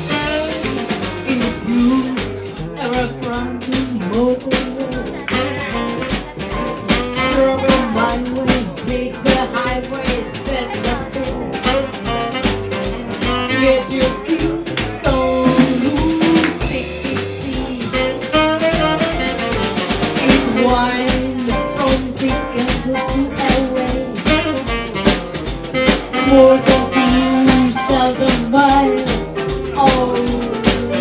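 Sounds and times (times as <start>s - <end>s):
drum kit: 0.0s - 31.0s
piano: 0.0s - 31.0s
upright bass: 0.0s - 31.0s
tenor saxophone: 5.0s - 8.4s, 11.5s - 14.4s, 15.4s - 21.6s, 23.4s - 28.1s.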